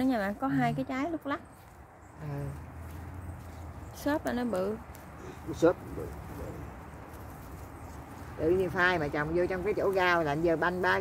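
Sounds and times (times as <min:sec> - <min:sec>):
hands digging in soil: 0:02.5 - 0:11.0.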